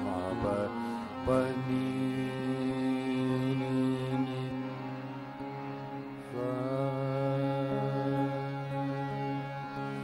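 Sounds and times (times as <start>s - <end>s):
man singing long held notes: 0.0s - 5.4s, 6.2s - 10.0s
harmonium accompaniment: 0.0s - 10.0s.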